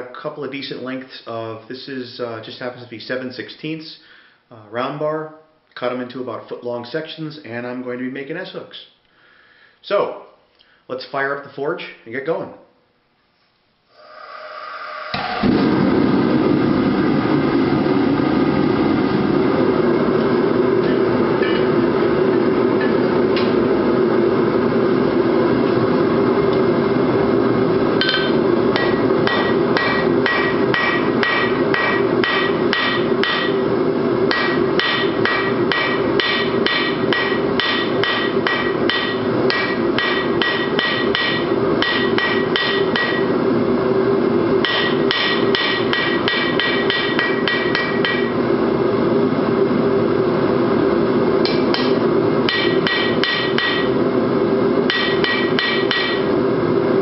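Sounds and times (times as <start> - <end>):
forge roaring: 13.9 - 45.3
hammer striking steel on anvil: 20.8 - 21.8, 28.0 - 33.6, 34.3 - 43.4, 44.6 - 48.4, 51.4 - 54.0, 54.9 - 56.4.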